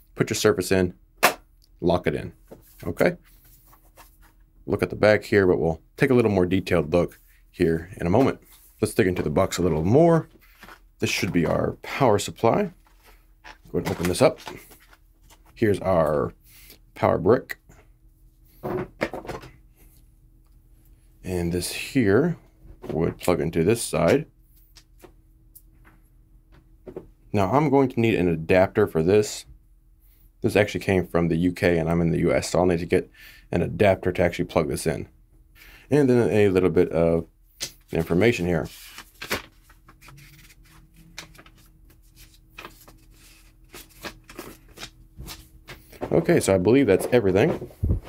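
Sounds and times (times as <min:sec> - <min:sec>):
paper rustling: 0:08.2 - 0:11.6, 0:12.8 - 0:15.6, 0:37.6 - 0:48.0
knocks and rustles of cable: 0:18.6 - 0:19.6, 0:25.8 - 0:27.2, 0:45.2 - 0:48.0.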